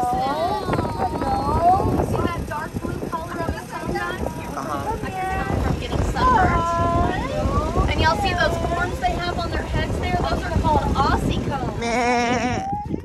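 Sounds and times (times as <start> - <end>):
low rumble: 0.0 - 12.7
people exclaiming and laughing: 0.0 - 13.0.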